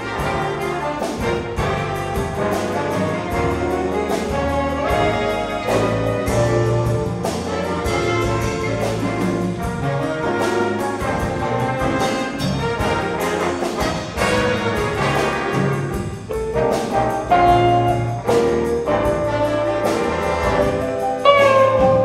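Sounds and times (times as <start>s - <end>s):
big band jazz: 0.0s - 22.0s
drum and cymbal strikes: 0.0s - 22.0s.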